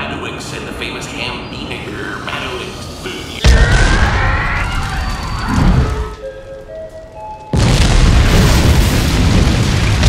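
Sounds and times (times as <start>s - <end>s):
rushing flames with rumble: 0.8s - 6.2s, 7.5s - 10.0s
rising high tones: 1.2s - 6.7s
music: 5.5s - 7.6s.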